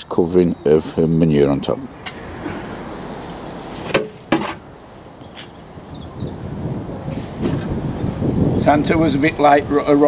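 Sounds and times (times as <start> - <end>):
wind: 0.0 - 10.0
sharp knocks: 3.8 - 4.6.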